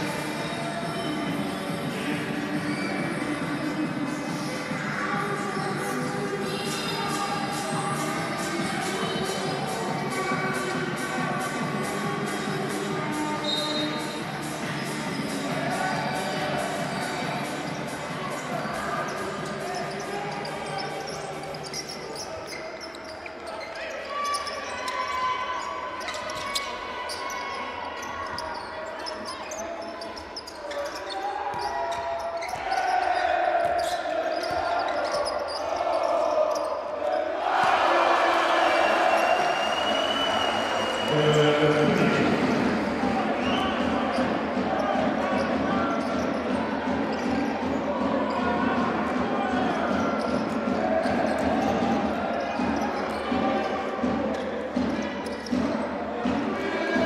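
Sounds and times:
crowd voices: 0:00.0 - 0:57.0.

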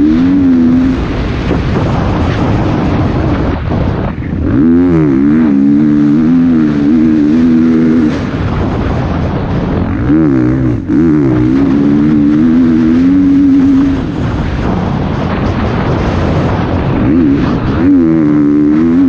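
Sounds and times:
dirt bike engine revving: 0:00.0 - 0:19.0
wind rushing over microphone: 0:00.0 - 0:19.0.

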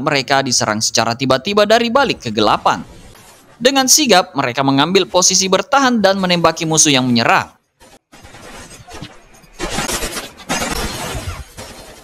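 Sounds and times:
rapid gunfire cracks: 0:07.8 - 0:12.0
shattering impacts: 0:07.8 - 0:12.0.

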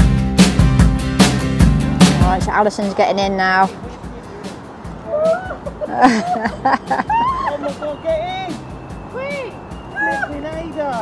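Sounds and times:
background music: 0:00.0 - 0:11.0
people laughing: 0:05.0 - 0:08.6.

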